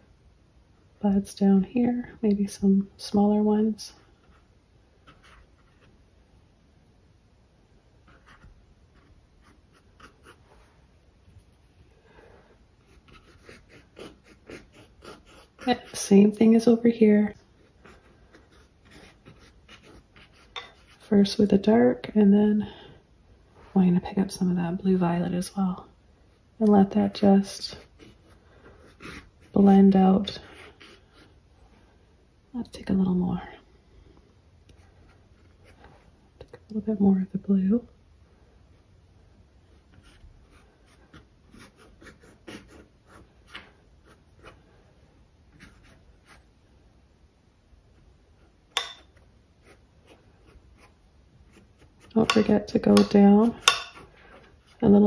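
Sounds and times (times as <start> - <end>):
paintbrush scratching on canvas: 12.8 - 16.3, 17.5 - 21.2, 27.5 - 31.4, 39.7 - 44.6, 45.5 - 46.6, 48.0 - 55.0.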